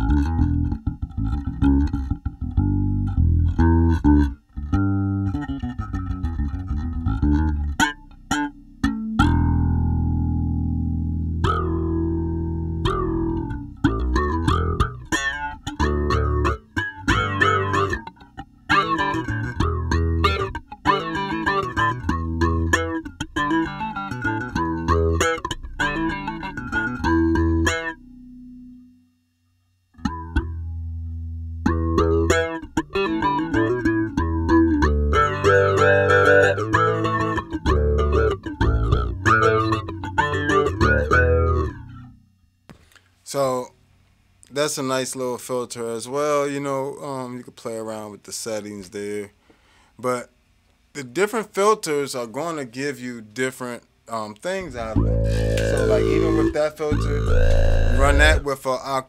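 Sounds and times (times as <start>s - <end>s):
filtered electric bass line: 0.0s - 28.9s, 29.6s - 43.0s, 54.6s - 58.5s.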